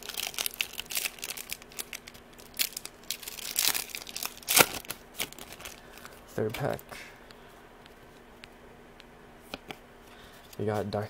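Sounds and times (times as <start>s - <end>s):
foil pack crinkling and ripping: 0.0s - 6.2s.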